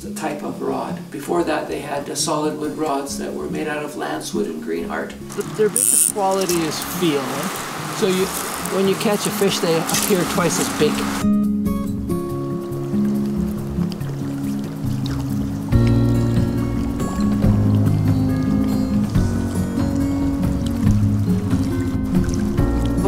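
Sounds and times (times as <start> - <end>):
instrumental background music: 0.1 - 23.0.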